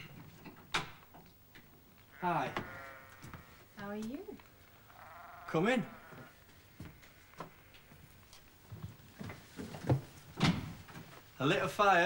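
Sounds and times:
sheep bleating: 0:02.1 - 0:03.6, 0:04.9 - 0:06.4.

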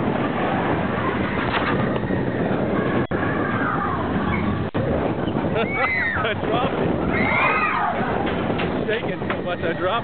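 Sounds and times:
roller coaster rumble and rattle: 0:00.0 - 0:10.0
wind on microphone: 0:00.0 - 0:10.0.

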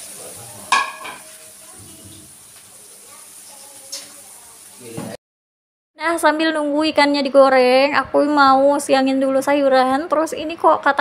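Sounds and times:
fish frying in hot oil: 0:00.0 - 0:05.2.

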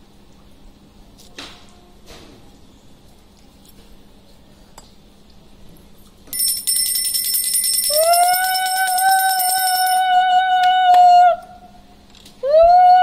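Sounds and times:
hand bell ringing rapidly: 0:06.3 - 0:10.2.

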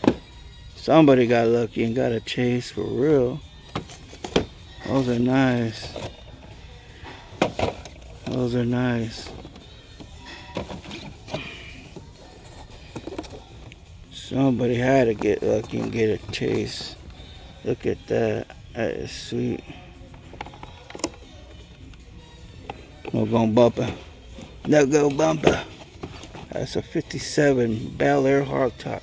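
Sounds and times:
faint background music: 0:00.0 - 0:29.0.

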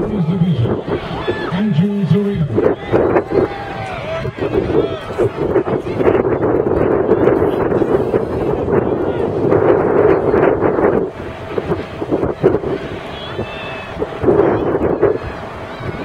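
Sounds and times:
distant indistinct voices: 0:00.0 - 0:16.0
wind on microphone: 0:00.0 - 0:16.0.

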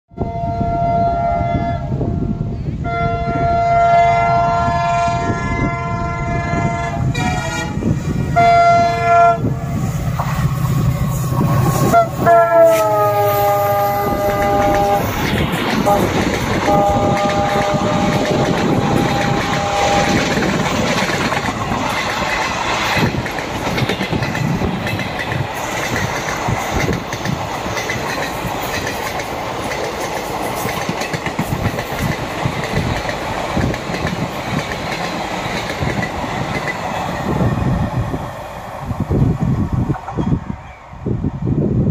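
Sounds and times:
locomotive horn blasts: 0:00.1 - 0:09.6, 0:11.8 - 0:15.2, 0:15.8 - 0:20.4
train rumbling on track: 0:00.1 - 0:41.9
wheels clicking over rail joints: 0:14.1 - 0:37.2.

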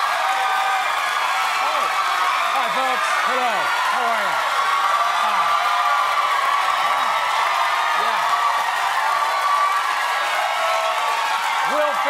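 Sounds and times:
audience cheering and applauding: 0:00.0 - 0:12.0.

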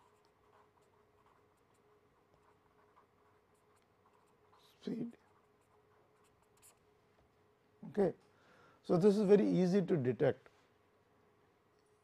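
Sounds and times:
marker writing on paper: 0:00.0 - 0:06.8
faint steady hum: 0:00.0 - 0:12.0.

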